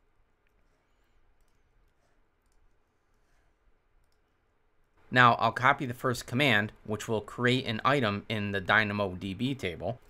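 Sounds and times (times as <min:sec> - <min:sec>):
keyboard and mouse clicks: 0:00.4 - 0:02.9, 0:04.0 - 0:04.4.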